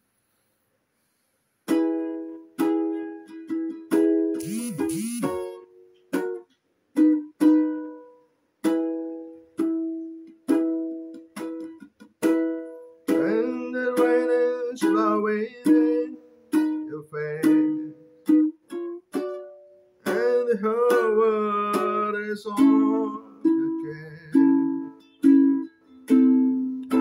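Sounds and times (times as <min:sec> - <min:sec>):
ukulele playing: 0:01.6 - 0:27.0
person singing: 0:04.4 - 0:05.6, 0:13.0 - 0:18.7, 0:20.0 - 0:26.2.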